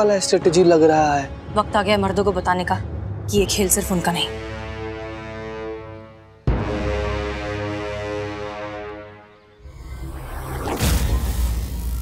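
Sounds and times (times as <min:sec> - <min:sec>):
sudden musical hit: 0:09.6 - 0:12.0.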